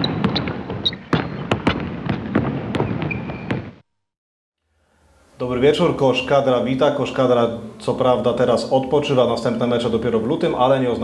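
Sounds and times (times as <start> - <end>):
noisy rush with sharp cracks: 0.0 - 3.8.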